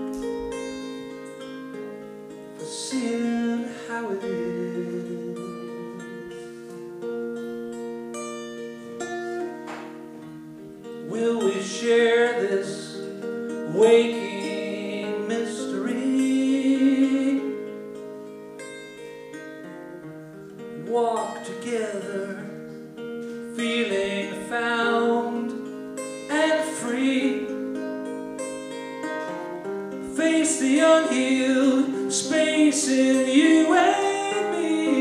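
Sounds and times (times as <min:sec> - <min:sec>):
picked acoustic guitar: 0:00.0 - 0:35.0
man singing: 0:02.6 - 0:06.7, 0:11.0 - 0:17.7, 0:20.8 - 0:22.8, 0:23.5 - 0:27.6, 0:30.0 - 0:35.0.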